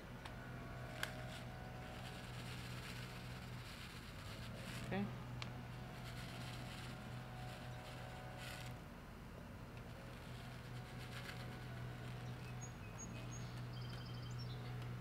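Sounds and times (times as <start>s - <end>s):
low mechanical hum: 0.0s - 15.0s
faint rustles: 0.8s - 8.8s, 9.8s - 14.1s.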